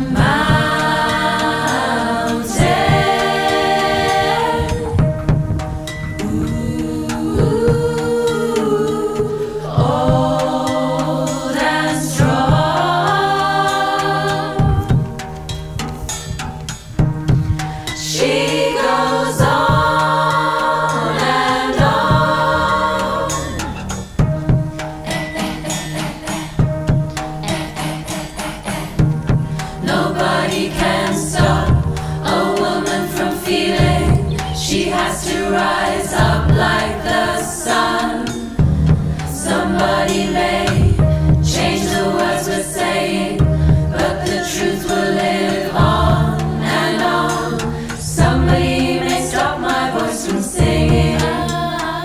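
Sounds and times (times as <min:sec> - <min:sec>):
low drone: 0:00.0 - 0:45.0
women's choir singing chords: 0:00.0 - 0:52.0.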